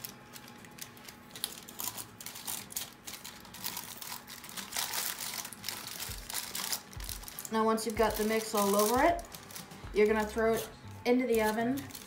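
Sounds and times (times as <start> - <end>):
aluminium foil crinkling: 0.0 - 12.0.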